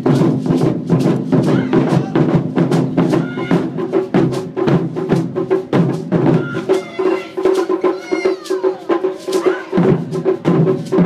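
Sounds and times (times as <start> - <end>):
taiko drums: 0.0 - 11.0
high voice crying out: 1.5 - 2.3, 3.2 - 3.6, 6.3 - 9.8.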